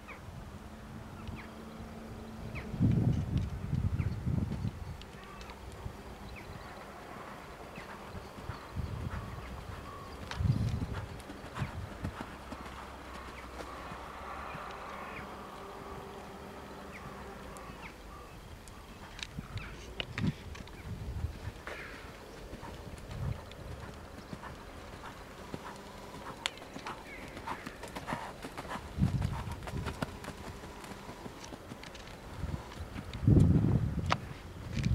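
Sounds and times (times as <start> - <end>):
horse hoofbeats cantering: 3.0 - 33.6.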